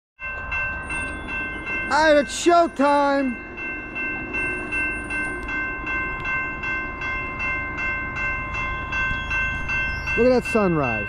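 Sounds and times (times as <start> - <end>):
railroad crossing bell ringing: 0.2 - 11.0.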